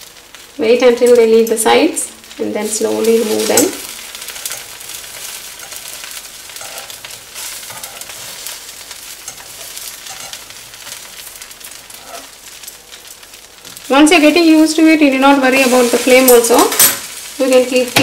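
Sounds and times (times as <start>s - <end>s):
batter sizzling in a pan: 0.0s - 18.0s.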